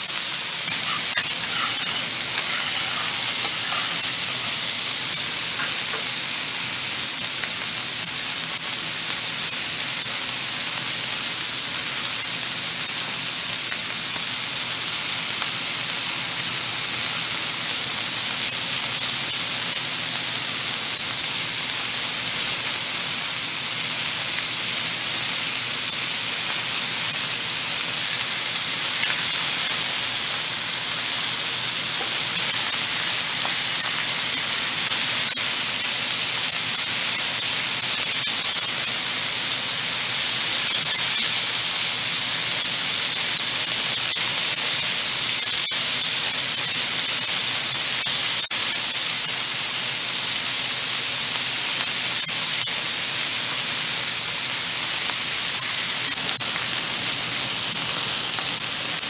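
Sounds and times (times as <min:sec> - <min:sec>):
food sizzling in hot fat: 0:00.0 - 0:59.0.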